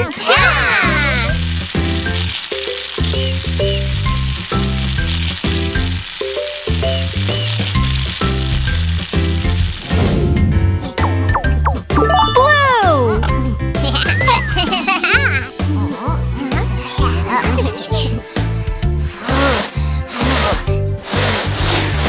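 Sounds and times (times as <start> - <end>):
upbeat music with bouncy bass: 6.6 - 22.0
air hissing out of balloons: 19.0 - 22.0.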